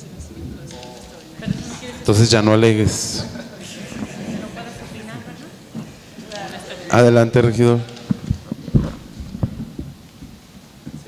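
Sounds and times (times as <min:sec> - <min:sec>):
microphone handling thumps: 0:08.0 - 0:11.0.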